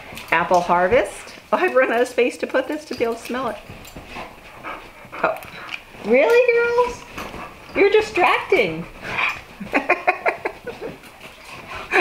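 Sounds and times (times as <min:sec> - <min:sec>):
dogs making short breathy sounds: 0:03.6 - 0:06.2.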